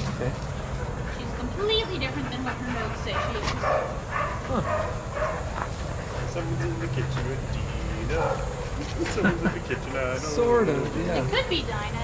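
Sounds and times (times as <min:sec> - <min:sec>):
dogs barking and yipping: 0:00.4 - 0:09.3.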